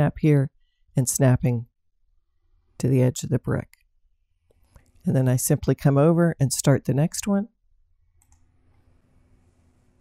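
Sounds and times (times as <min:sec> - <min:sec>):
computer mouse click: 0:08.2 - 0:08.5.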